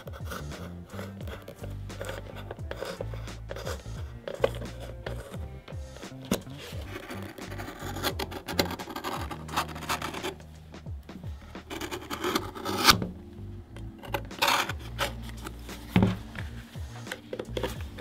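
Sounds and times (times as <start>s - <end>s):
background music: 0.0s - 18.0s
knife slicing leather: 6.0s - 10.4s.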